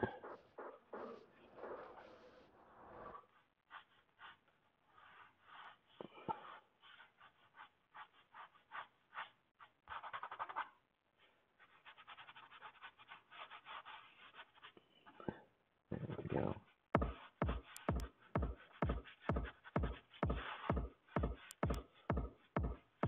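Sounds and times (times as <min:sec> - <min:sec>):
faint paintbrush strokes: 0:01.8 - 0:15.2.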